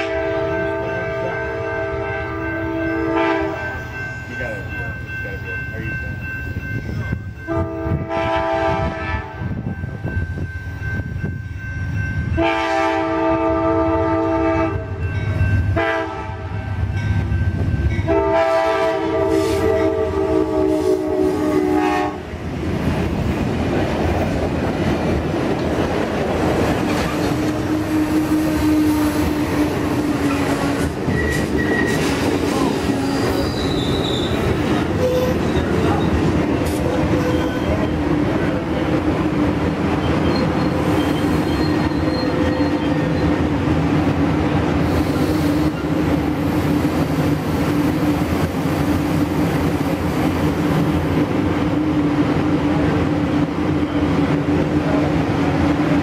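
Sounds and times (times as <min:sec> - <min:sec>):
train air horn blasts: 0:00.0 - 0:03.8, 0:07.5 - 0:09.6, 0:12.4 - 0:15.0, 0:15.7 - 0:16.8, 0:18.0 - 0:22.3, 0:27.4 - 0:32.0, 0:44.8 - 0:45.9
train wheel and rail noise: 0:00.0 - 0:56.0
faint wheel squeal: 0:33.2 - 0:34.4, 0:40.2 - 0:43.2.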